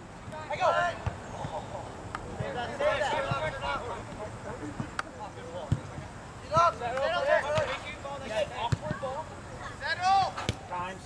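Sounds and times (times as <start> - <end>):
faint players' voices: 0.2 - 11.0
soccer ball kicked thump: 8.6 - 9.0.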